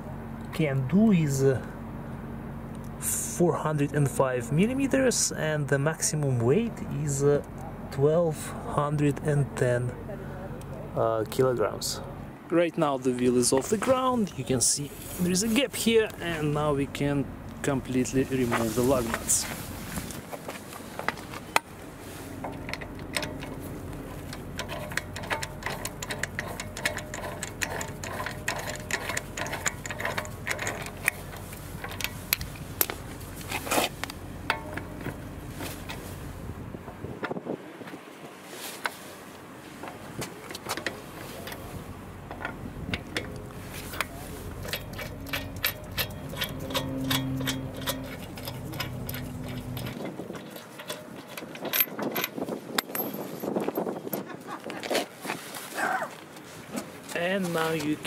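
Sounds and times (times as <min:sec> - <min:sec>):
metallic clicks and rattles: 0:22.4 - 0:36.1, 0:40.4 - 0:55.0.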